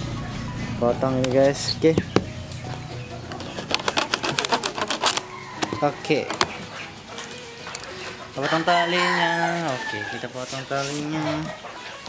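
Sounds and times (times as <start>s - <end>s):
knife scraping plastic strap: 3.5s - 5.2s.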